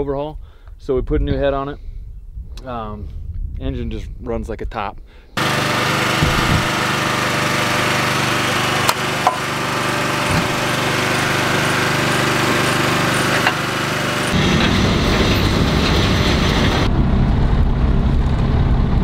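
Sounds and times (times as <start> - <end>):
diesel engine idling: 5.4 - 16.9
low truck engine: 5.4 - 19.0.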